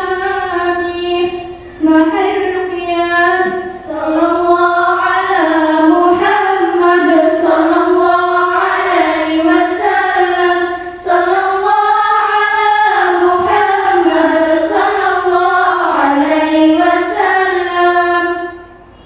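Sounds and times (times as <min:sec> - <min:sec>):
girls singing devotional song: 0:00.0 - 0:19.0.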